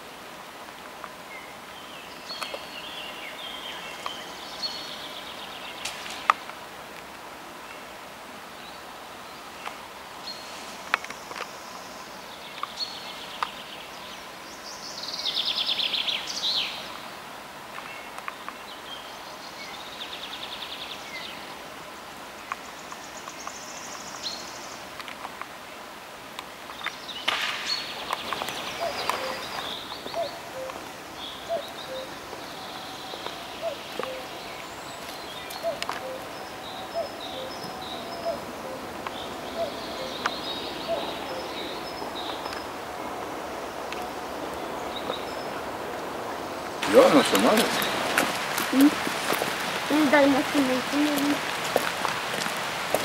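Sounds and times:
steady background hiss: 0:00.0 - 0:53.0
songbirds singing: 0:01.0 - 0:06.7, 0:07.5 - 0:53.0
bird trill: 0:27.7 - 0:42.6.

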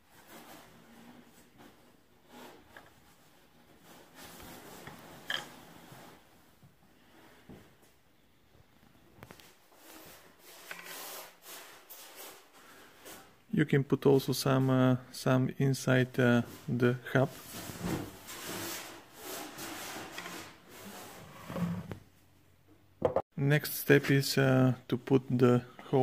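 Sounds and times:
faint rubbing and scraping: 0:00.0 - 0:07.8, 0:08.9 - 0:13.4, 0:16.1 - 0:22.2.

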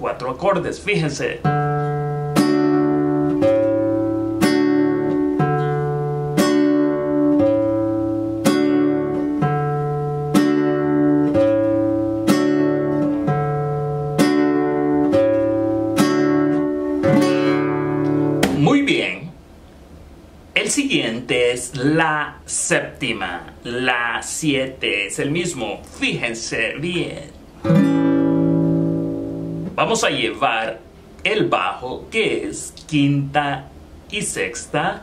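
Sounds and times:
classical guitar strumming: 0:00.4 - 0:19.0, 0:27.4 - 0:31.5.

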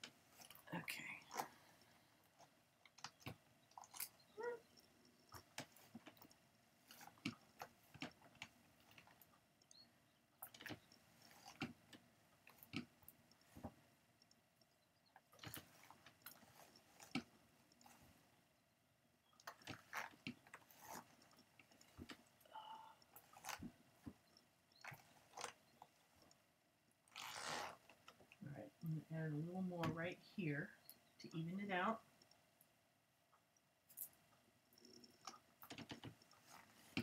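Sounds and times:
faint irregular clicks: 0:00.0 - 0:37.0.

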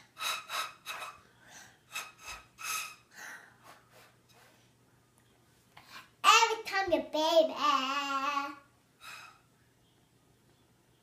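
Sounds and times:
child blowing breathy whistling puffs: 0:00.0 - 0:04.6.

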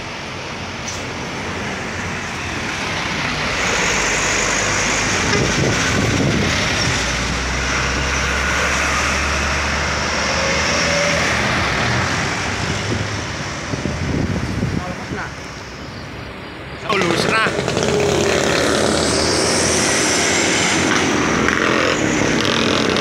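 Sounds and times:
vehicles passing at speed: 0:00.0 - 0:23.0
low engine drone: 0:15.4 - 0:23.0.

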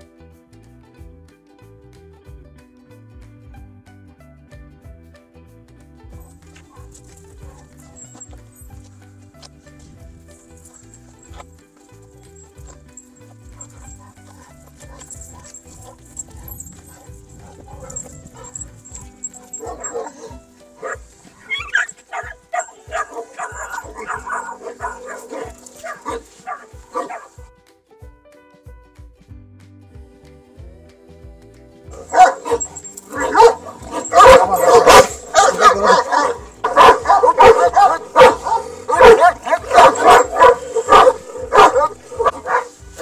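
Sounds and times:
background music: 0:00.0 - 0:43.0
dogs barking: 0:06.3 - 0:08.4, 0:12.6 - 0:27.4, 0:31.9 - 0:43.0.

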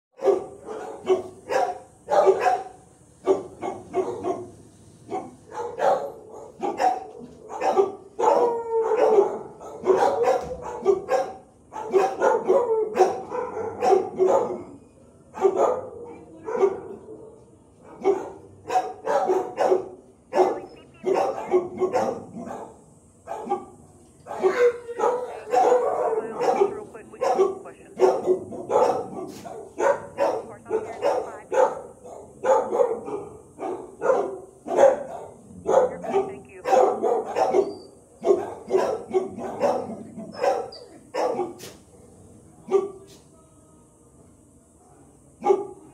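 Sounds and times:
dogs barking in a kennel: 0:00.2 - 0:43.2, 0:45.3 - 0:45.9.

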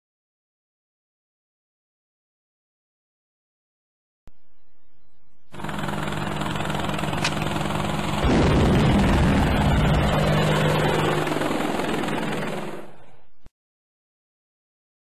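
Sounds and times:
low hum: 0:04.3 - 0:13.5
loud steady rushing noise: 0:06.2 - 0:12.8.

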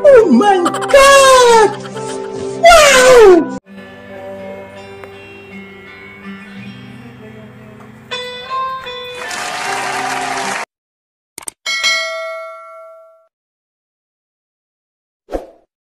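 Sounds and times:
backing music: 0:00.4 - 0:03.3.

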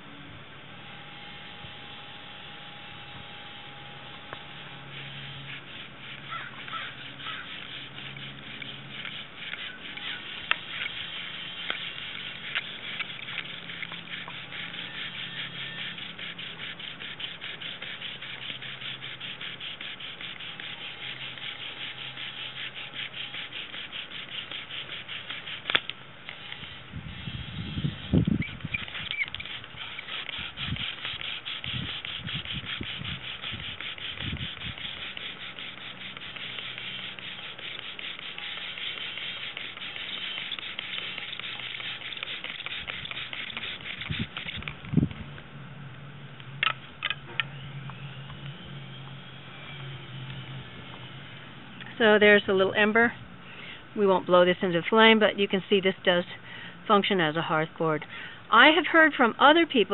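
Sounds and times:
bow drill rubbing and squeaking: 0:04.3 - 0:44.8.

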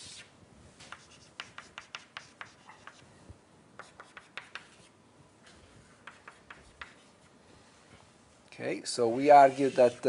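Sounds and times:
chalk scraping on blackboard: 0:00.0 - 0:03.0, 0:03.8 - 0:04.9, 0:05.5 - 0:07.3, 0:09.1 - 0:10.0
chalk tapping and scratching: 0:00.0 - 0:03.1, 0:03.8 - 0:04.9, 0:05.5 - 0:07.3, 0:09.2 - 0:10.0.

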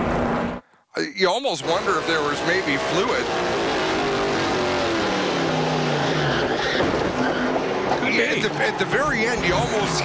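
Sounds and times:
racing car engine braking: 0:01.6 - 0:10.0.

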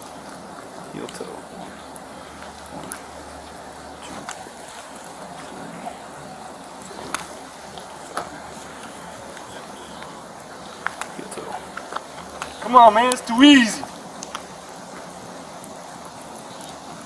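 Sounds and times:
rain on wet pavement: 0:00.0 - 0:17.0.

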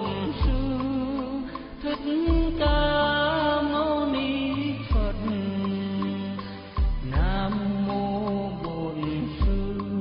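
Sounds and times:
held melody line: 0:00.0 - 0:10.0.

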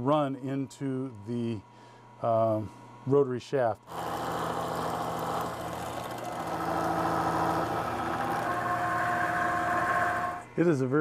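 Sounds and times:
end mill cutting metal: 0:03.9 - 0:10.5
milling machine hum: 0:03.9 - 0:10.6.

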